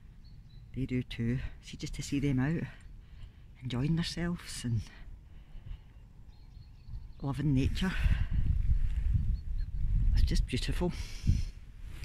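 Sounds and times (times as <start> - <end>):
wind buffeting phone microphone: 3.9 - 12.0.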